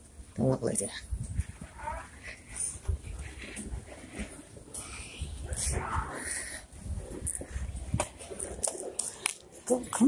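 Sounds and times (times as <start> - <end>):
footsteps and camera handling thumps: 7.1 - 10.0.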